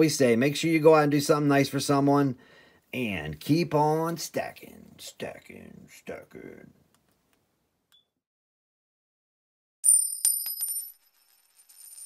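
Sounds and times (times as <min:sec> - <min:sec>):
metallic coin clinks: 0:09.8 - 0:12.0.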